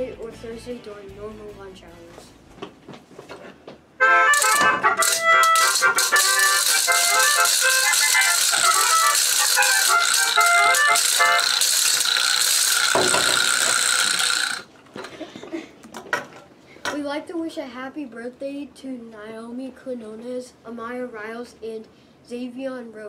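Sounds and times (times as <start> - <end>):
melodica playing quick tune: 4.0 - 14.6
hand shakers rattling: 4.3 - 14.6.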